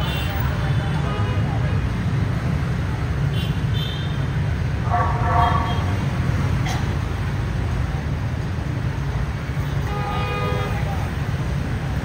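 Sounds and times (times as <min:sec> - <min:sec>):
traffic engine rumble: 0:00.0 - 0:12.0
loud horn: 0:04.8 - 0:06.0, 0:09.8 - 0:10.9.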